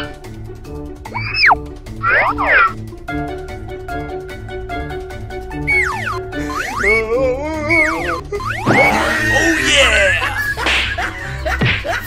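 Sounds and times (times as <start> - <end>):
background music: 0.0 - 12.0
comedy sound effects: 1.1 - 2.8, 5.6 - 11.0.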